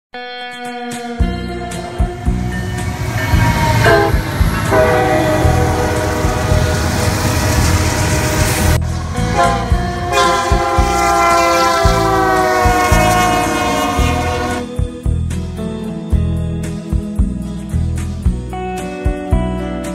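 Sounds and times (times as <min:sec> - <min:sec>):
rumble of passing trains: 0:01.2 - 0:15.0
locomotive horns blowing: 0:01.8 - 0:14.7.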